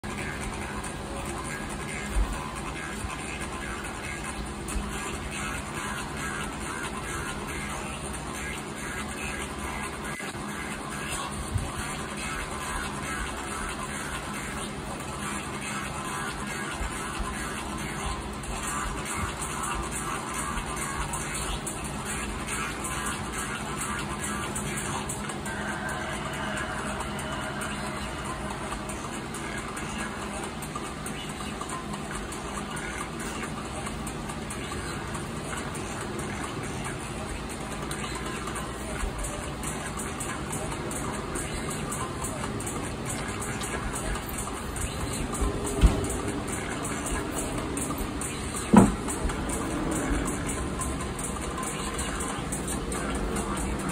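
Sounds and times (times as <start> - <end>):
electric fan running: 0.0 - 53.9
music playing: 0.0 - 53.9
steady rushing noise: 0.0 - 53.9.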